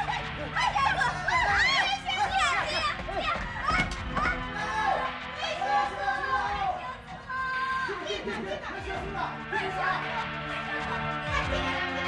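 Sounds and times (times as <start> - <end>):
people shouting in alarm: 0.0 - 8.2
dramatic background music: 0.0 - 12.0.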